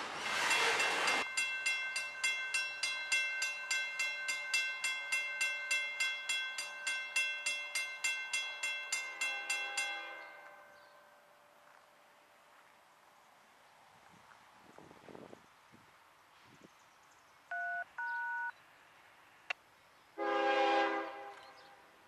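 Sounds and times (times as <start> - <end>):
crossing warning bell ringing: 0.2 - 11.6.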